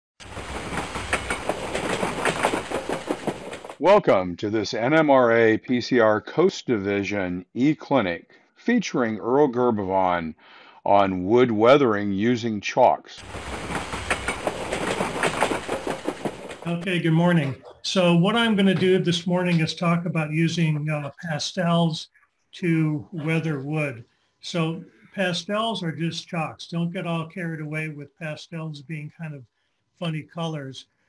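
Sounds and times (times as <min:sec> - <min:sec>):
train low rumble: 0:00.2 - 0:03.8, 0:13.2 - 0:21.9, 0:22.6 - 0:29.4
train wheels clattering on rails: 0:00.2 - 0:03.8, 0:13.2 - 0:20.3.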